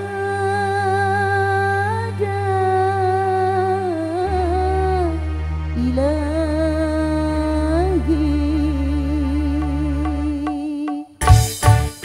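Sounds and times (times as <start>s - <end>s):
electronic keyboard accompaniment: 0.0s - 12.0s.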